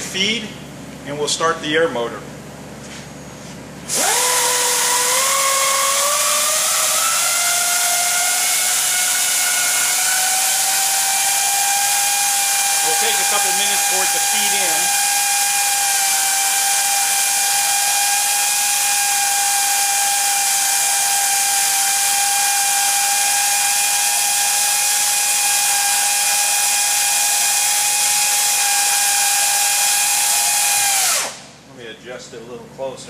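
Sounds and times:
pneumatic pipe cutter whine and hiss: 3.9s - 31.5s.

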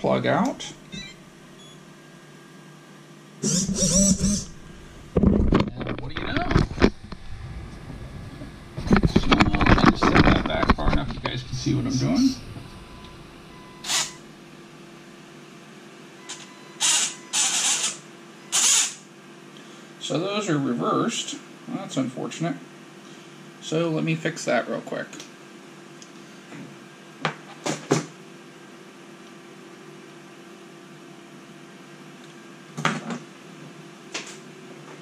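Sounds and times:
rc car electric motor bursts: 3.4s - 4.6s, 13.8s - 14.2s, 16.8s - 19.0s
camera handling knocks and rustling: 5.2s - 7.0s.

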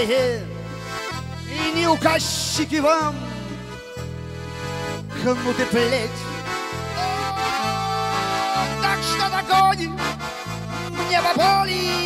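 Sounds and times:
button accordion playing: 0.0s - 12.0s.

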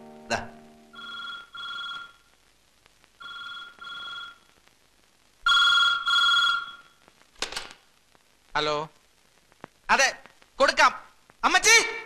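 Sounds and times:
telephone ringing: 0.9s - 2.3s, 3.2s - 4.5s, 5.5s - 7.0s.

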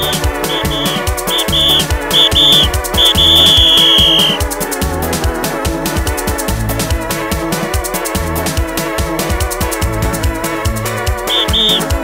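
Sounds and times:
high shrill note: 0.0s - 4.4s, 11.3s - 11.9s
fast drum beat: 0.0s - 12.0s
gospel band music: 0.0s - 12.0s
organ chords: 0.0s - 12.0s.

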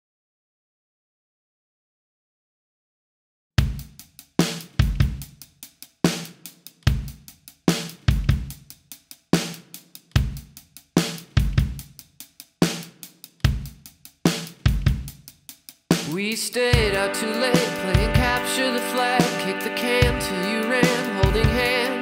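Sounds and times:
drum kit playing steady beat: 3.6s - 22.0s.

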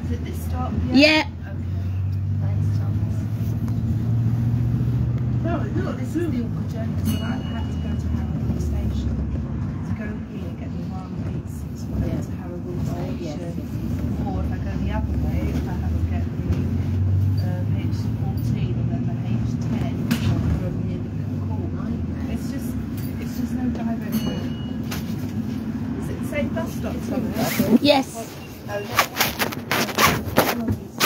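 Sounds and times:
bus engine and road rumble: 0.0s - 31.0s
passenger chatter: 0.0s - 31.0s.

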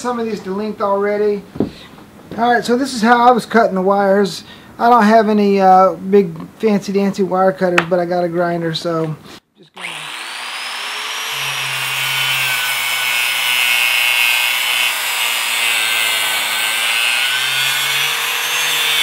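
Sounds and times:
angle grinder cutting cable: 9.8s - 19.0s.

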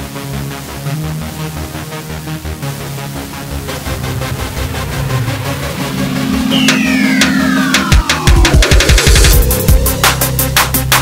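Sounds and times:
electronic music with steady beat: 0.3s - 11.0s.

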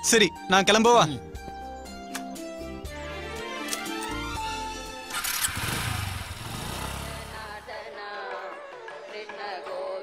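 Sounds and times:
motorcycle engine starting and running: 5.0s - 7.8s.

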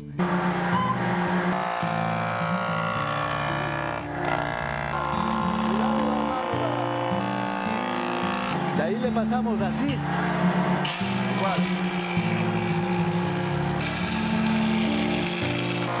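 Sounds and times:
music playing: 0.0s - 16.0s
wood jointer machine whine: 0.0s - 16.0s.

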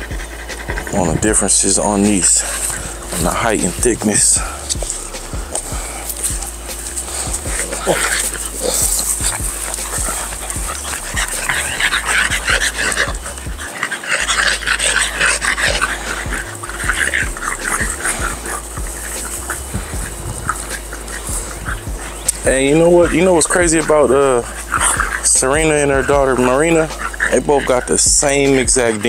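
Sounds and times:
dogs making short noises: 0.2s - 25.6s.

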